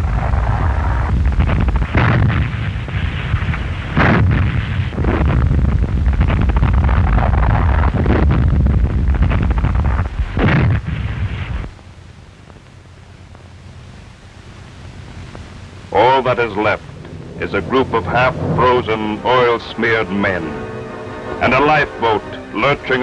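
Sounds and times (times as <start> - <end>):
gunfire rumble: 0.0 - 11.7
shell explosions: 0.0 - 11.7.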